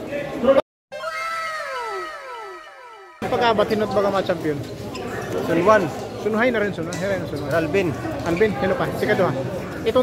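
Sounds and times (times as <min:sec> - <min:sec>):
falling whining tone with echoes: 0:00.9 - 0:04.1.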